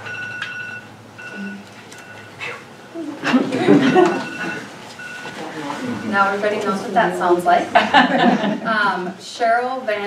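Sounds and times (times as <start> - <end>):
electronic timer beeping: 0.0 - 2.4, 3.8 - 5.3.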